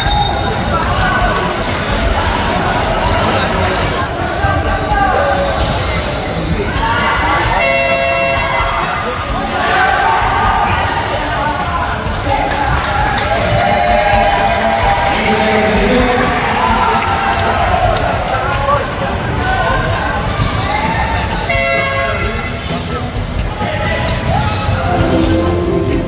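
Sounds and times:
players and spectators shouting: 0.0 - 22.6
horn: 24.8 - 26.0.

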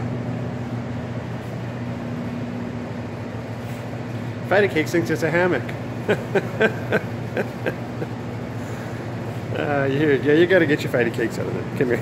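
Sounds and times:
man chuckling: 5.9 - 8.9.

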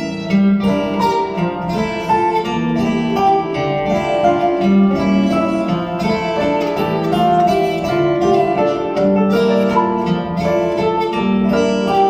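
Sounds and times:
acoustic guitar: 0.0 - 12.0
piano: 0.0 - 12.0.

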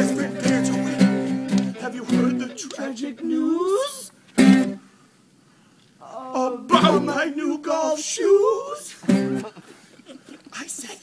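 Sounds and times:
person singing: 0.0 - 4.1, 6.0 - 8.8.

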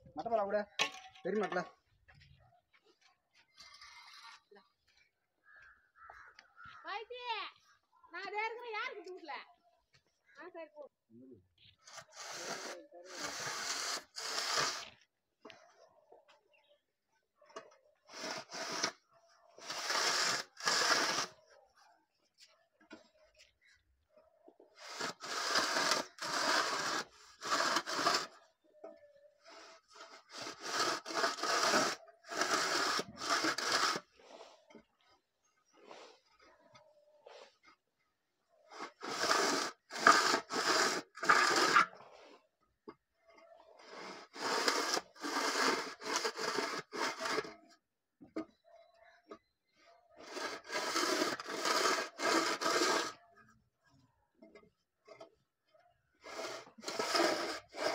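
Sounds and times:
metal straightedge scraping mortar: 0.2 - 1.7, 3.5 - 4.6, 11.9 - 15.0, 17.6 - 21.4, 24.8 - 34.8, 38.7 - 47.8, 50.2 - 53.5, 56.2 - 57.9.

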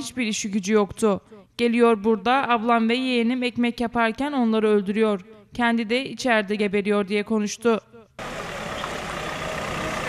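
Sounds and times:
van engine rumbling: 8.2 - 10.0.

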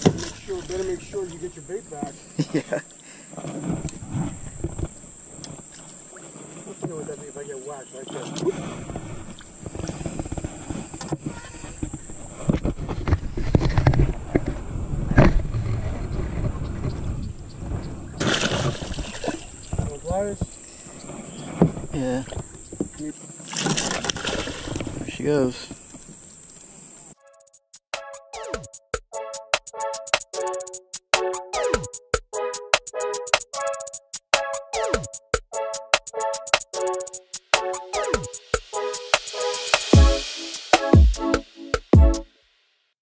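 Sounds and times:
fish thrashing and splashing: 18.2 - 19.7, 23.4 - 25.0.

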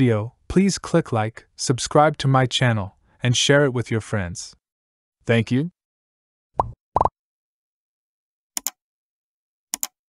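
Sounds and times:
upward-sliding pop bloops: 6.6 - 7.1.

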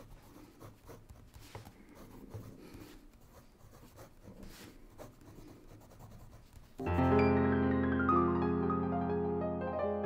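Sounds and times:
pen scratching on paper: 0.0 - 6.8
piano sustained notes: 6.8 - 10.0.

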